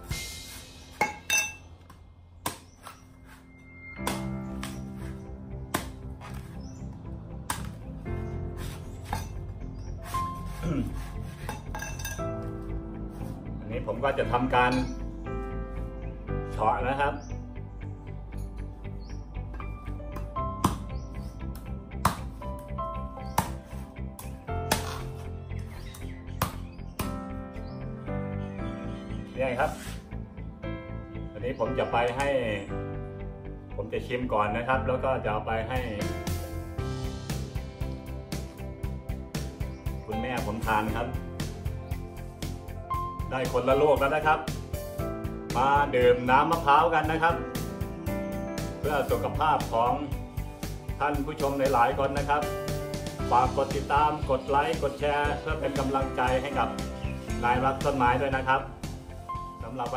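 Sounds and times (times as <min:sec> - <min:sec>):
background music: 0:00.0 - 0:59.9
machete chopping coconut: 0:02.4 - 0:03.0, 0:04.0 - 0:05.1, 0:05.7 - 0:06.4, 0:07.4 - 0:07.8, 0:20.2 - 0:22.4, 0:23.2 - 0:25.2, 0:25.9 - 0:27.2.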